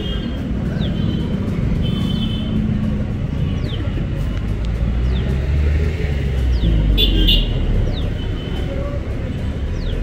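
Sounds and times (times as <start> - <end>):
bus engine rumble: 2.7 - 6.9.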